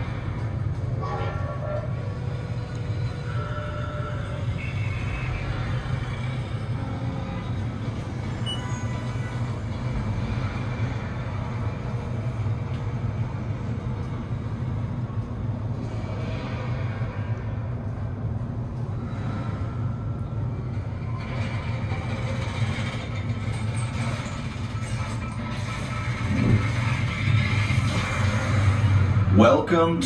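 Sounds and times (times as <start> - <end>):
elevator low rumble: 0.0 - 30.0
faint music: 0.0 - 30.0.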